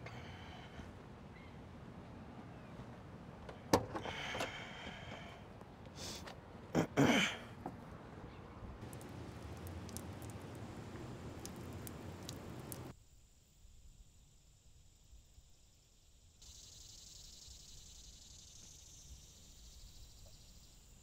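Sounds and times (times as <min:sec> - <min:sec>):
low outdoor rumble: 0:00.0 - 0:12.9
insects chirring: 0:08.8 - 0:21.0.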